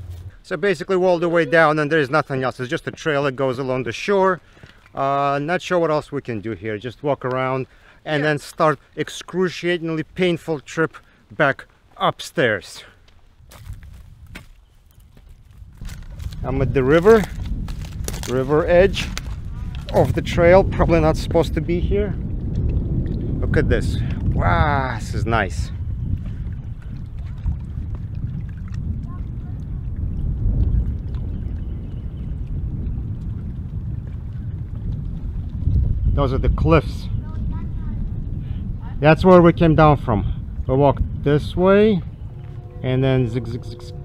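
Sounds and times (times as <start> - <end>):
low rumble: 0.0 - 1.0, 15.3 - 25.0, 25.7 - 44.0
wind buffeting microphone: 0.0 - 3.0, 13.3 - 44.0
footsteps crunching on stones: 13.0 - 20.2.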